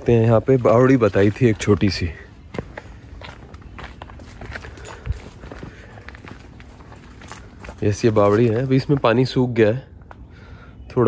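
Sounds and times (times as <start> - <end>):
footsteps on dirt path: 0.0 - 10.2.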